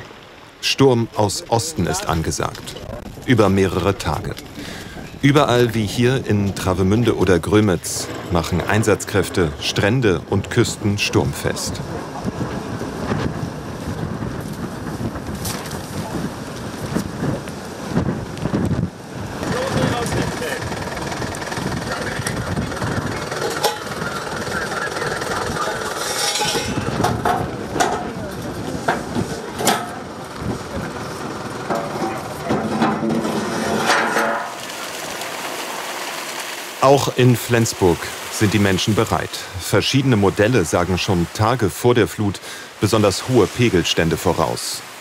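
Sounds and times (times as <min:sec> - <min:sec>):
steady rushing noise: 0:00.0 - 0:45.0
wind: 0:00.0 - 0:45.0
people talking in background: 0:21.9 - 0:32.7.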